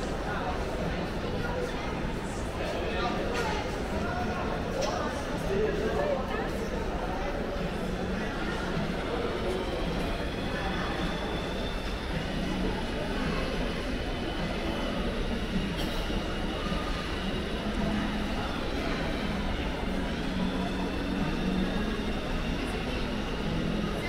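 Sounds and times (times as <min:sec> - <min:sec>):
faint indistinct voices: 0:00.0 - 0:24.0.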